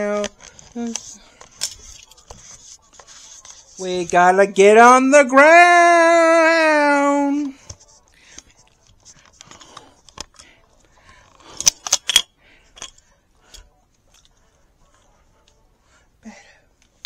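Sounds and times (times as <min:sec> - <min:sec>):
camera handling clicks and rustles: 0:07.6 - 0:10.5, 0:11.2 - 0:14.4.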